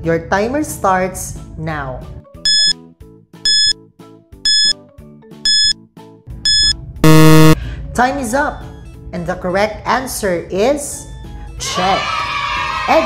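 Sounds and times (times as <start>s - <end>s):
low buzzer: 2.5s - 2.7s, 3.5s - 3.7s, 4.5s - 4.7s, 5.5s - 5.7s, 6.5s - 7.6s
short high beeps: 2.5s - 2.7s, 3.5s - 3.7s, 4.5s - 4.7s, 5.5s - 5.7s, 6.5s - 7.6s.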